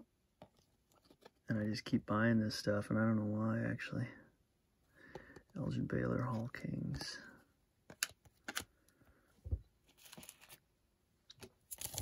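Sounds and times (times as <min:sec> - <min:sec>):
cards rustling: 0:00.5 - 0:01.5, 0:05.2 - 0:08.9, 0:09.8 - 0:10.6, 0:11.4 - 0:12.0.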